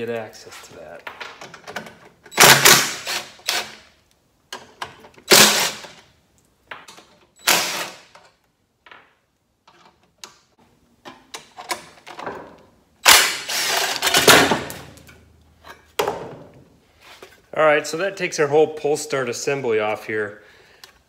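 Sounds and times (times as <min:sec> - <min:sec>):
cordless drill whirring: 0:13.5 - 0:14.1.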